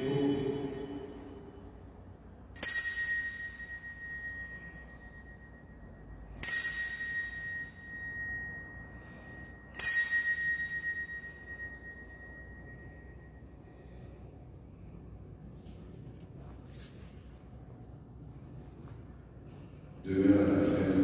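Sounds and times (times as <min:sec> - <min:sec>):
bell ringing: 0:02.6 - 0:14.0.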